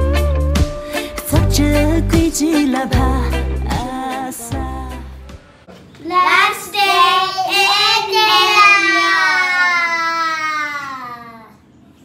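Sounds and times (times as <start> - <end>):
background music: 0.0 - 5.7
young children singing: 6.0 - 10.8.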